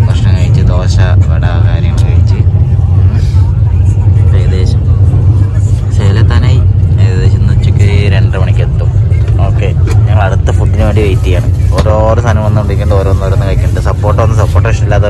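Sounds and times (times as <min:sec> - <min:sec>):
train rumbling: 0:00.0 - 0:15.0
voices talking: 0:00.0 - 0:15.0.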